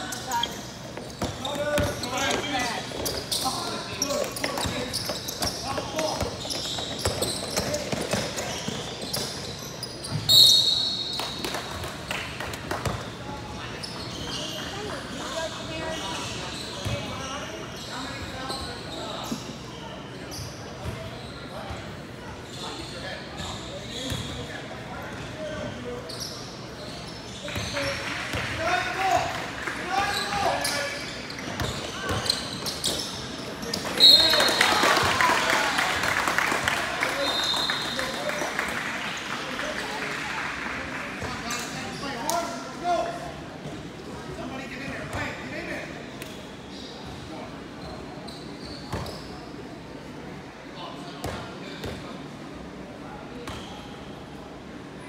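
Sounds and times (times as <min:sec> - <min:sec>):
voices of players and spectators: 0:00.0 - 0:55.0
referee's whistle: 0:10.2 - 0:11.3, 0:34.0 - 0:34.7, 0:37.2 - 0:38.1.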